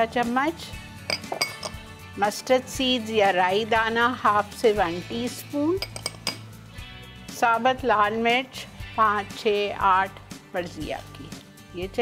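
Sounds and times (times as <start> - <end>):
metal spoon clinking kitchenware: 1.1 - 1.9, 5.8 - 6.5.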